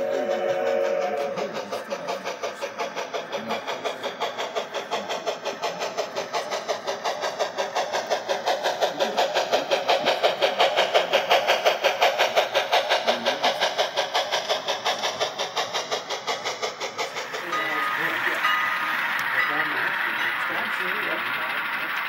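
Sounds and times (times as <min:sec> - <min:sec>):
model train running: 0:00.0 - 0:22.0.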